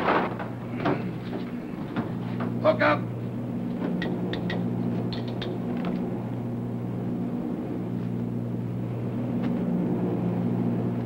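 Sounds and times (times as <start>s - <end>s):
plane engines droning inside cabin: 0.0s - 11.0s.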